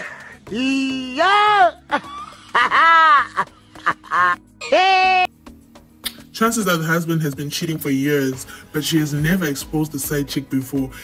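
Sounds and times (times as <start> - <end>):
background music: 0.0 - 11.0
man crying out: 0.5 - 5.3.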